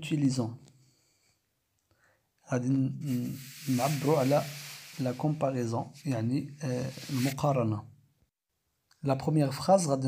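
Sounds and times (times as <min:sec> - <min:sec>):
person speaking: 0:02.8 - 0:07.7
steady hiss: 0:03.0 - 0:07.6.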